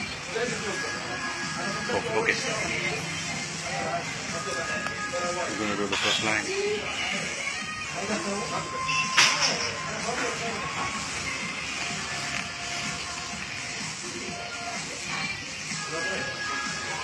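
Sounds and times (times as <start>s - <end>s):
people chattering: 0.0s - 12.2s
music playing: 0.0s - 17.0s.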